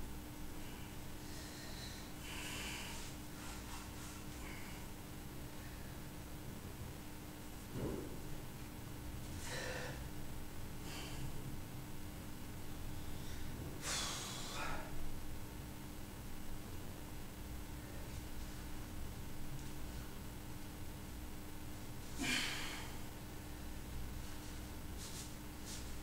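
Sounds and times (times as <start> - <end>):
man breathing hard through nose: 0.6 - 4.9, 9.3 - 10.1, 10.8 - 11.4, 13.0 - 15.0, 22.2 - 23.1
man's forceful breath of exertion: 9.4 - 10.1, 13.8 - 15.0, 22.2 - 23.1.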